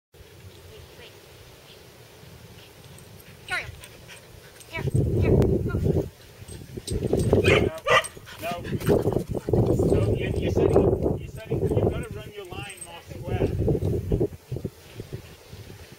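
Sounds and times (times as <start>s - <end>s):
dog barking and yipping: 7.2s - 10.7s.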